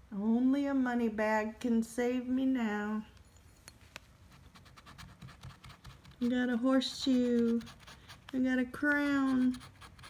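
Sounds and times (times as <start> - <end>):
coin scratching lottery ticket: 4.4 - 10.0.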